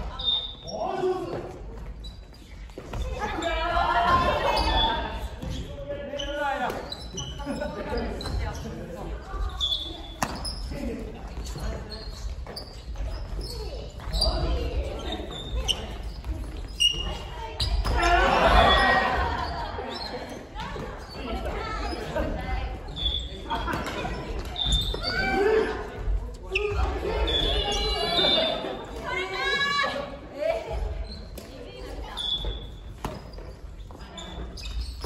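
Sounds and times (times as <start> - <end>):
sneakers squeaking on wooden court: 0.0 - 29.6, 30.4 - 35.0.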